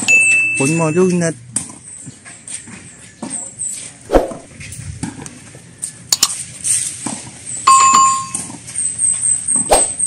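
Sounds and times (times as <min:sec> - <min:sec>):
short ringing tone: 0:07.7 - 0:08.5.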